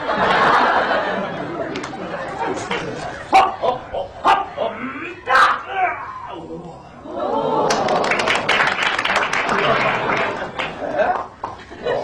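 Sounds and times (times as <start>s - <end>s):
man yelping: 4.2s - 6.5s.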